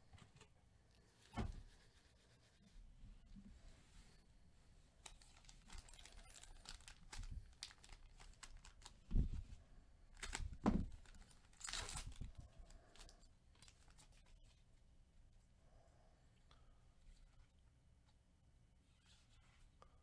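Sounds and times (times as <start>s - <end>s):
thuds: 1.3s - 1.7s
foil wrapper crinkling and tearing: 5.0s - 9.0s, 10.1s - 12.3s, 12.9s - 14.4s.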